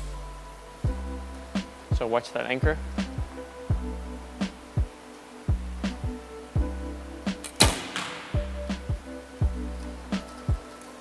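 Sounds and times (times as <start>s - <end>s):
music with kick-drum beat: 0.8s - 10.7s
bow string release crack: 7.4s - 8.4s.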